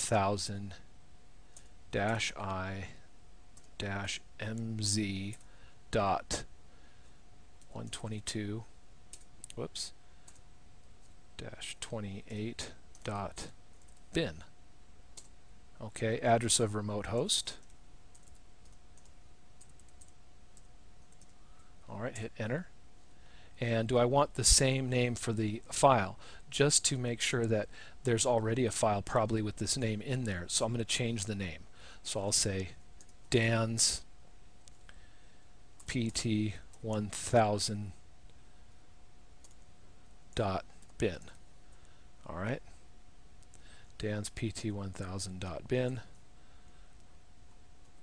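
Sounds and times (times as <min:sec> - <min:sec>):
man speaking: 0:00.0 - 0:00.9, 0:01.9 - 0:03.0, 0:03.8 - 0:06.5, 0:07.7 - 0:08.7, 0:09.5 - 0:10.0, 0:11.4 - 0:14.5, 0:15.8 - 0:17.6, 0:21.8 - 0:22.7, 0:23.6 - 0:34.1, 0:35.9 - 0:38.0, 0:40.4 - 0:41.4, 0:42.2 - 0:42.8, 0:44.0 - 0:46.2
faint steady hum: 0:00.0 - 0:48.0
faint steady tone: 0:00.0 - 0:48.0
low background hiss: 0:00.0 - 0:48.0.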